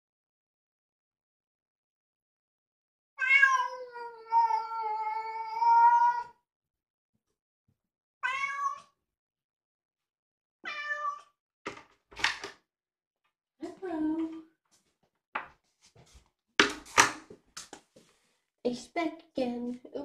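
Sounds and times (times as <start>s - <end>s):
cat meowing: 3.2s - 6.4s, 8.2s - 9.0s, 10.6s - 11.3s.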